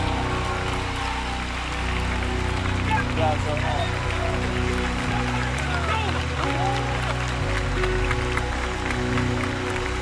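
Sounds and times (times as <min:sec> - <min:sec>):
crowd applause and cheering: 0:00.0 - 0:10.0.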